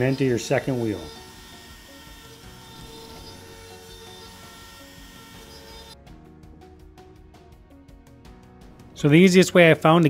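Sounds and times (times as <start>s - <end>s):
router spindle whining: 0.0s - 6.0s
background music: 0.0s - 10.0s.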